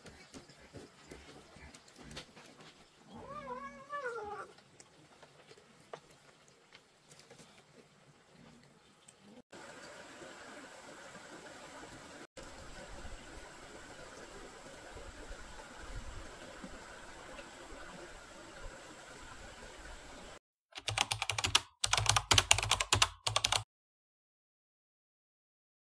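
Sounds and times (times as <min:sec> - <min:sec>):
keyboard typing clicks: 0:20.8 - 0:23.6.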